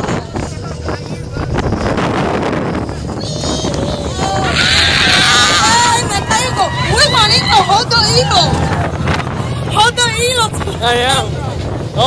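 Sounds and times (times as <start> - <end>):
low rumble of moving train: 0.0 - 12.0
wind on microphone: 0.0 - 12.0
riders screaming and yelling: 3.0 - 9.5.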